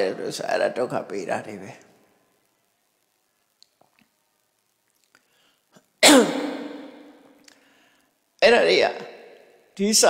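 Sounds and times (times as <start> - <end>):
person sneezing loudly: 6.0 - 7.1.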